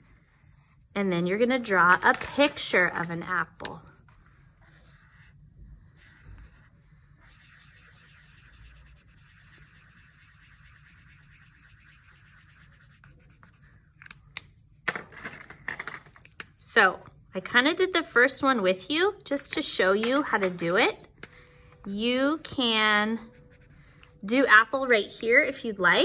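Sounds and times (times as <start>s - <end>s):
marker scratching on paper: 0.0s - 1.8s, 2.6s - 14.1s, 23.3s - 24.4s.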